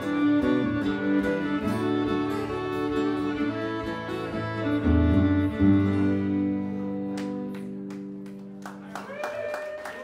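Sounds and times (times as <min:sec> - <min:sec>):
fiddle playing: 0:00.0 - 0:08.3
acoustic guitar playing: 0:00.0 - 0:08.9.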